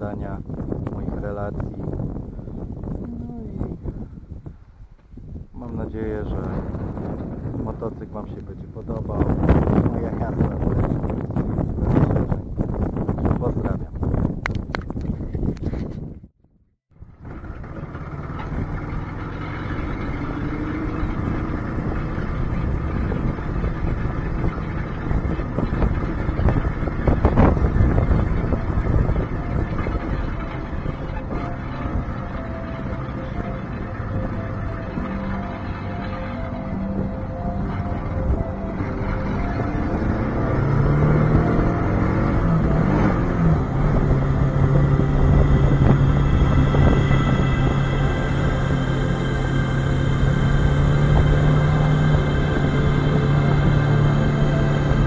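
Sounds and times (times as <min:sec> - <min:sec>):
wind rushing: 0:00.4 - 0:16.3, 0:21.1 - 0:55.0
motorcycle engine: 0:16.9 - 0:55.0
background music: 0:18.8 - 0:55.0.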